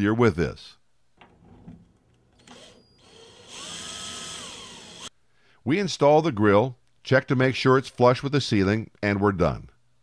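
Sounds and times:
cordless drill driving a screw: 2.3 - 5.1.

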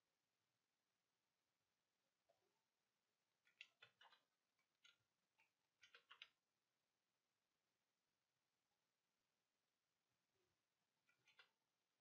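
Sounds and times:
computer mouse clicks: 3.4 - 6.4, 11.1 - 11.6.

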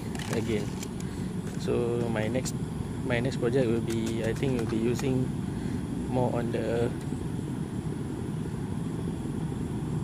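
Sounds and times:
faint hum: 0.0 - 10.0
low background rumble: 0.0 - 10.0.

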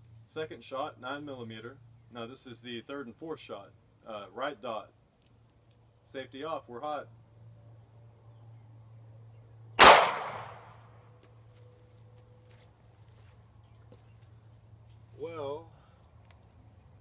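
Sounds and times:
pistol shot: 9.8 - 10.8.

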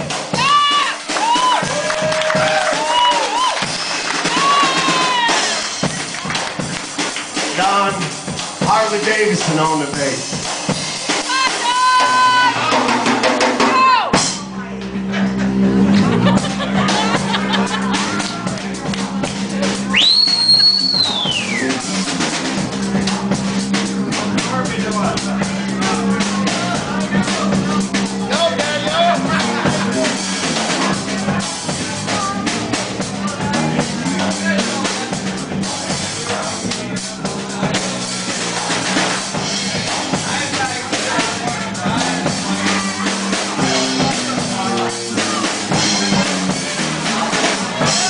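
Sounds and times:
drum kit beat: 0.0 - 48.0
electric bass line: 0.0 - 48.0
live blues band: 0.0 - 48.0.

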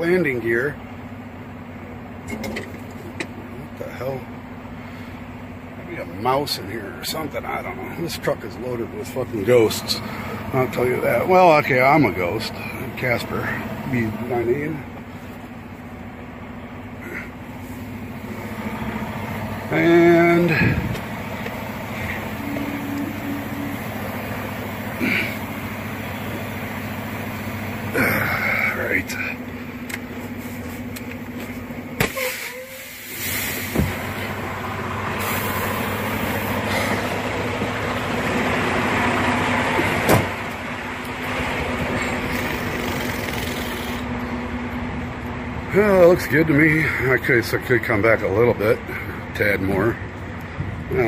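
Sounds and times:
diesel truck engine running: 0.0 - 51.0.

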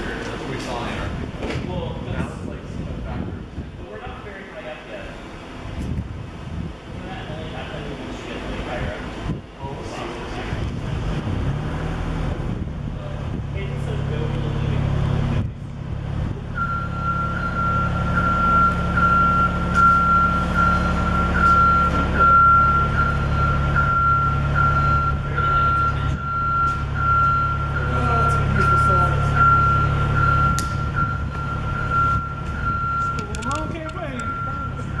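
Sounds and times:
vehicle engine humming: 0.0 - 35.0
pulsing reversing alarm tone: 16.5 - 33.3, 34.1 - 35.0.

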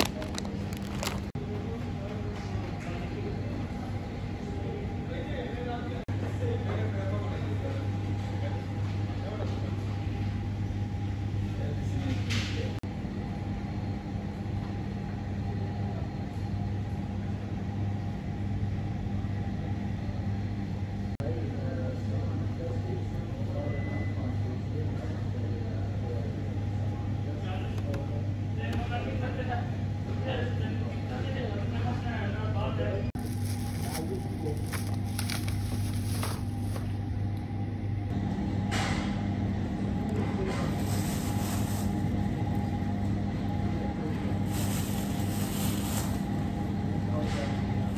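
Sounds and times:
refrigerated cases and air handling drone: 0.0 - 1.3, 33.2 - 37.0
plastic bag rustling: 0.0 - 1.4, 33.2 - 37.0, 40.7 - 42.1, 44.4 - 46.3
refrigeration and ventilation hum: 0.0 - 47.9.

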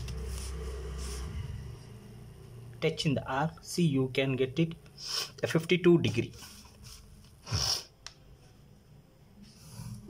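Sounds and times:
plastic sliding over paper: 0.0 - 1.5.

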